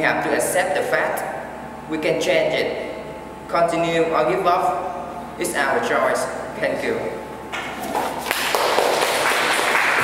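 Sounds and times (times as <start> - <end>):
audience applauding: 8.3 - 10.0.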